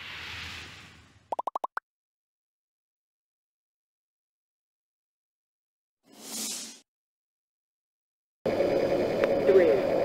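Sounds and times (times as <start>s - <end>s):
whoosh: 0.0s - 1.3s
rising bloop pops: 1.3s - 1.8s.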